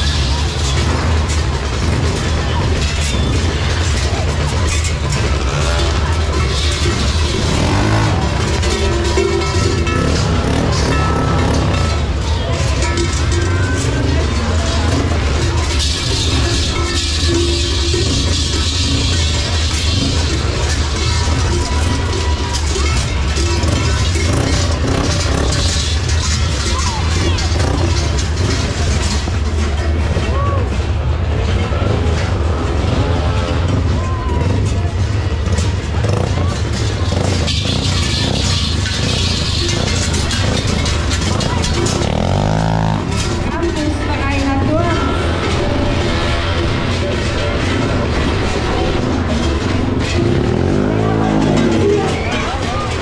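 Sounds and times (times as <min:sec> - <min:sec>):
loud crowd voices: 0:00.0 - 0:53.0
music: 0:00.0 - 0:53.0
quad bike engine running: 0:00.0 - 0:53.0.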